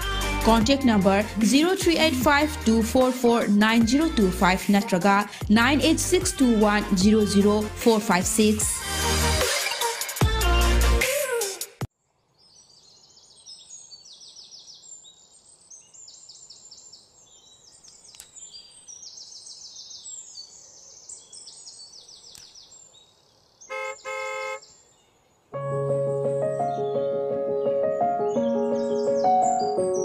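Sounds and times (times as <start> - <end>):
music: 0.0 - 11.9, 25.6 - 30.0
birds trilling: 23.6 - 25.2, 26.1 - 30.0
car horn honking: 23.7 - 24.6.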